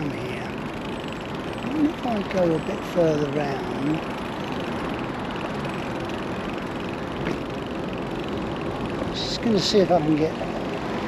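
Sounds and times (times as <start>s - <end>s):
traffic: 0.0s - 11.0s
wind: 0.0s - 11.0s.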